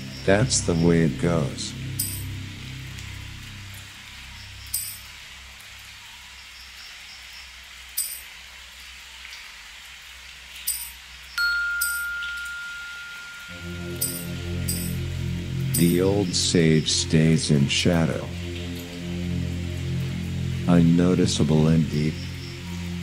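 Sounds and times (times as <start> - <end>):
low drone: 0.0 - 5.8, 11.4 - 23.0
chime strikes: 2.0 - 2.4, 4.7 - 5.1, 10.7 - 16.0.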